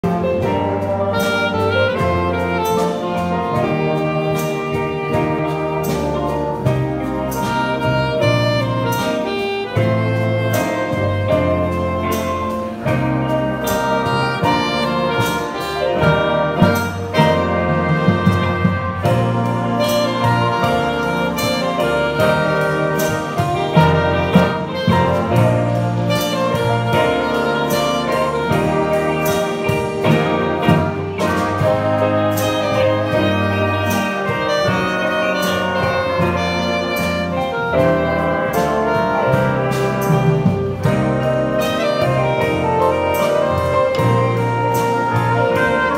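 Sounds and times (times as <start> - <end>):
bass line: 0.0 - 45.9
jazz big band playing: 0.0 - 45.9.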